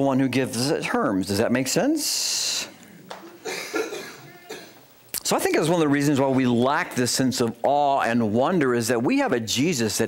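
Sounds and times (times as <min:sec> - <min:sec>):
person coughing: 0:03.4 - 0:04.8.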